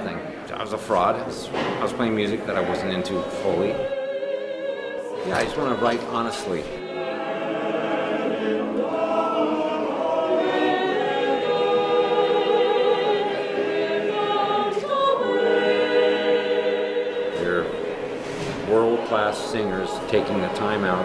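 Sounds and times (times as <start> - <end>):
mixed choir singing: 0.3 - 21.0.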